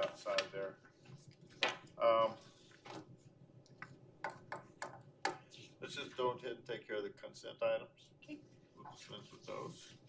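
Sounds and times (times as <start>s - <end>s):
man speaking: 0.0s - 0.8s, 5.8s - 10.0s.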